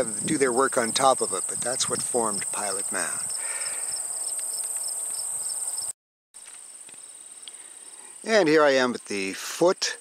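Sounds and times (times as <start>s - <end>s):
insects trilling: 0.0s - 10.0s
pulsed insect chirping: 2.3s - 5.9s.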